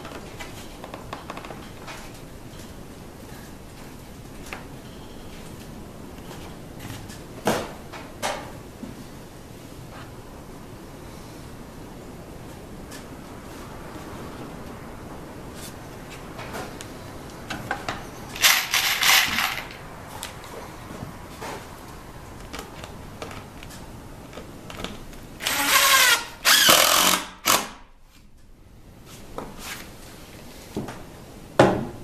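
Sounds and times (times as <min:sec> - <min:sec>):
impact driver driving screws: 0:18.4 - 0:19.8, 0:25.4 - 0:27.8.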